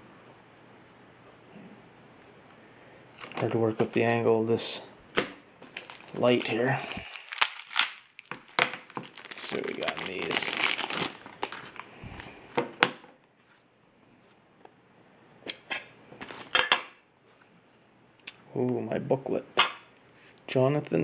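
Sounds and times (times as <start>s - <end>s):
plastic packaging crinkling: 3.2s - 4.2s, 5.6s - 12.4s, 16.2s - 16.6s.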